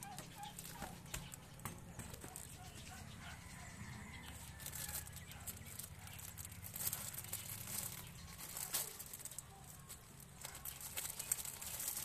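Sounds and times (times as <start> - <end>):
plastic bags rustling: 4.2 - 12.0.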